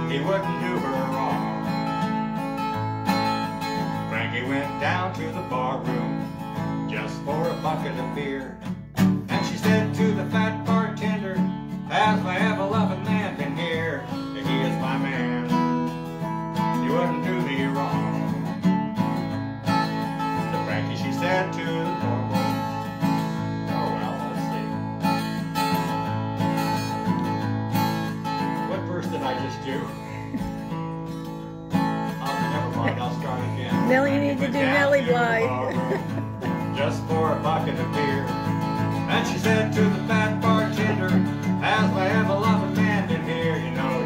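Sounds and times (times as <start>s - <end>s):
man singing: 0.0s - 1.7s, 3.8s - 15.6s, 16.6s - 18.4s, 20.4s - 22.7s, 32.1s - 44.0s
acoustic guitar strumming: 0.0s - 44.0s.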